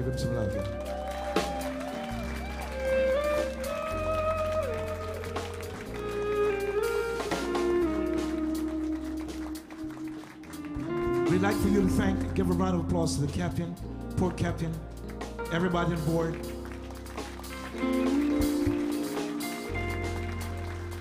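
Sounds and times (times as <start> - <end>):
bass: 0.0 - 21.0
drums: 0.0 - 21.0
electric guitar lead: 0.0 - 21.0.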